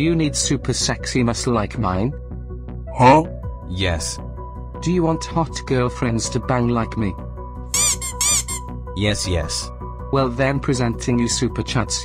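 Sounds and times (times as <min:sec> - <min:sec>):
background music: 0:00.0 - 0:12.0
high squawk-like cries: 0:07.8 - 0:08.6.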